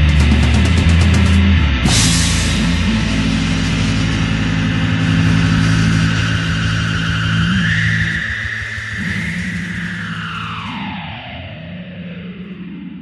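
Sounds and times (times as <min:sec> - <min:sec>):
rock band holding low chord: 0:00.0 - 0:10.8
high whining tone: 0:01.9 - 0:11.8.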